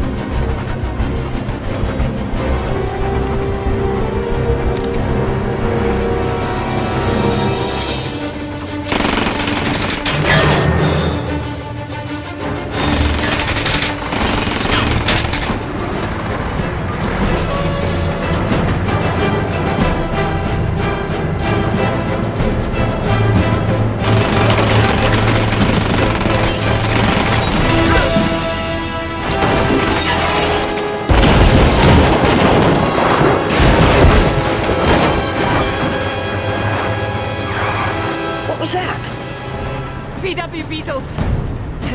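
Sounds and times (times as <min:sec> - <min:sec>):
orchestral score music: 0:00.0 - 0:41.9
heavy machinery: 0:12.7 - 0:38.4
rumble of moving train: 0:12.8 - 0:29.2
heavy crash: 0:29.2 - 0:36.6.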